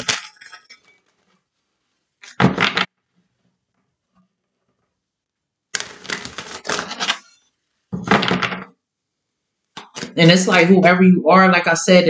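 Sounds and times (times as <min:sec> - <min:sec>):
cards being shuffled: 0:05.8 - 0:07.4, 0:09.8 - 0:10.2.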